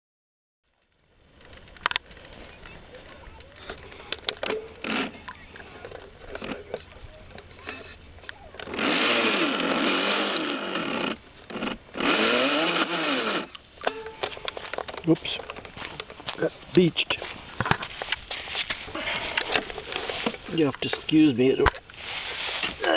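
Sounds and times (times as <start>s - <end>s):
toy boat motor whining: 4.8s - 5.3s, 8.6s - 14.5s.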